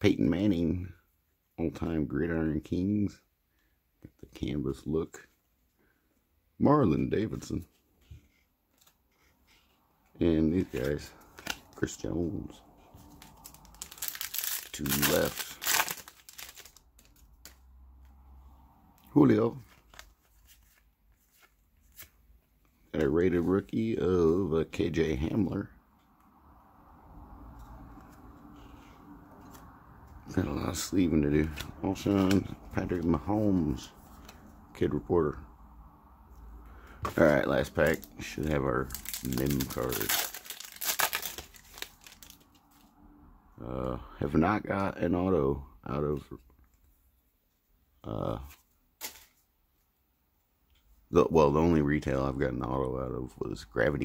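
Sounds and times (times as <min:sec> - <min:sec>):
foil wrapper crinkling: 0:13.0 - 0:17.6, 0:37.2 - 0:42.7.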